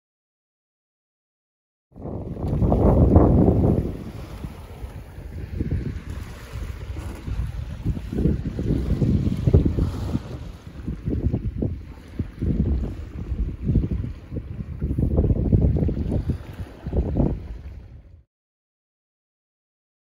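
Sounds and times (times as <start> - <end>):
water washing past hull: 2.0 - 18.2
wind buffeting microphone: 2.0 - 18.2.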